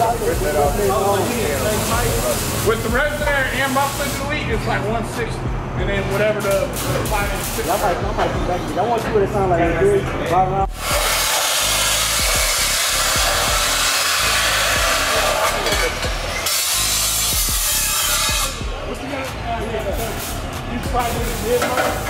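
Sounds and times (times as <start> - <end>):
chop saw grinding metal: 10.8 - 18.6.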